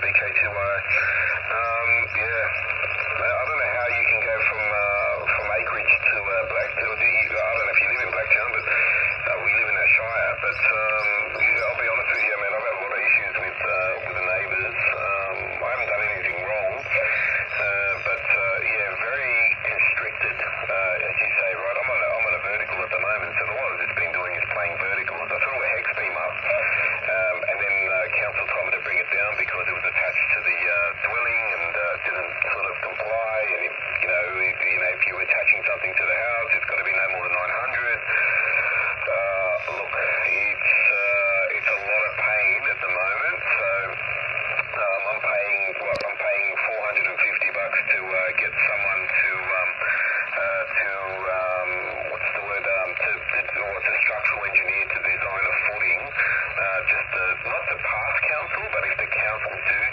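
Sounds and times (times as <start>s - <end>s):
radio voice speaking: 0.0s - 59.9s
static hiss: 0.0s - 59.9s.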